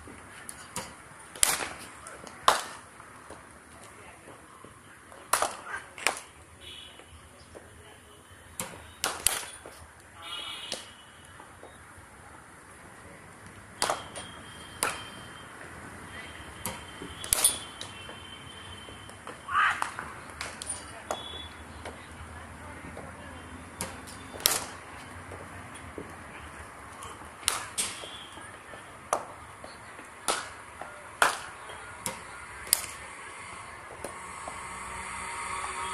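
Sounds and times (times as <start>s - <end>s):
cricket bats striking balls: 0.0s - 7.8s, 8.4s - 35.1s.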